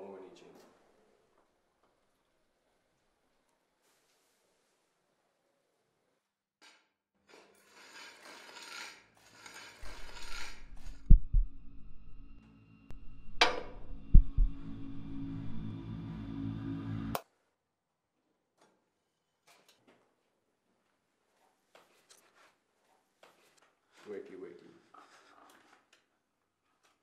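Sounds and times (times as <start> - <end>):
scratchy rustling: 7.7 - 11.2
low drone: 9.8 - 17.2
deep booming hits: 11.0 - 12.3, 12.9 - 15.8.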